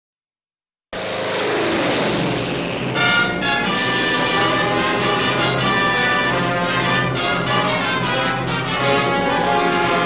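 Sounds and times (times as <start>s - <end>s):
propeller plane engine roaring: 0.9s - 10.0s
orchestral brass music: 2.8s - 10.0s.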